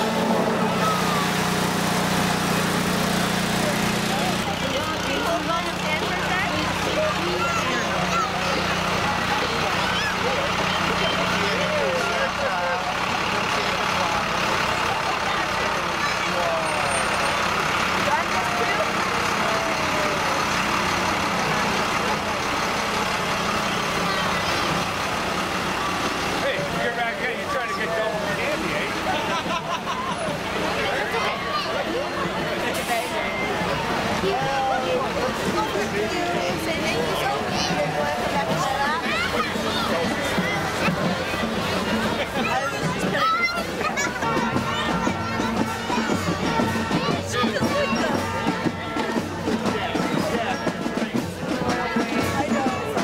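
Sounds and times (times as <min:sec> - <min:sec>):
crowd talking and calling out: 0:00.0 - 0:53.0
large vehicle engine running: 0:00.0 - 0:53.0.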